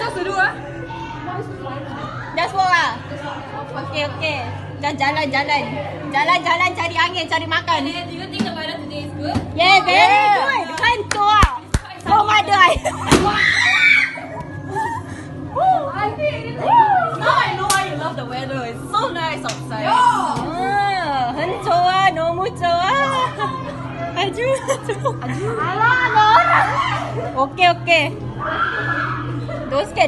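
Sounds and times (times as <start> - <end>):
steady low hum: 0.0 - 30.0.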